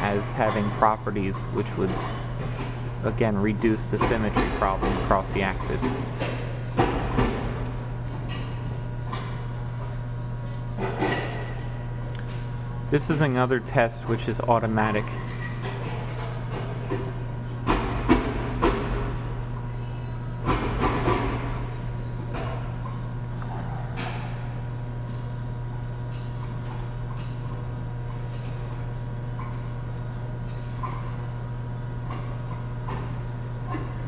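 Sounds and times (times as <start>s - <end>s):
steady low machine hum: 0.0s - 34.0s.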